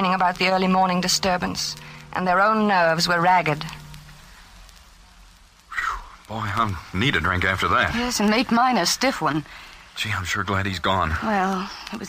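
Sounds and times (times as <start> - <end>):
old recording hiss: 0.0 - 12.0
breathy exhale: 9.4 - 10.0.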